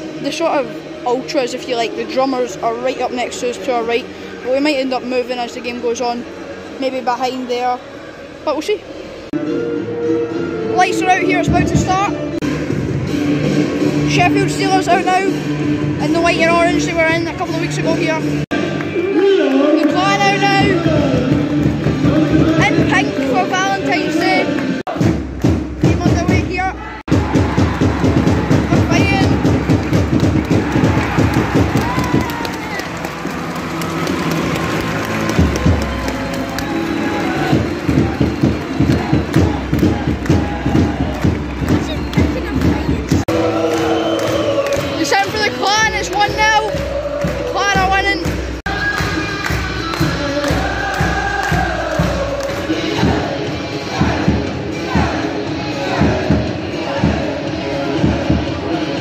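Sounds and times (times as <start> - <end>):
arena crowd: 0.0 - 59.0.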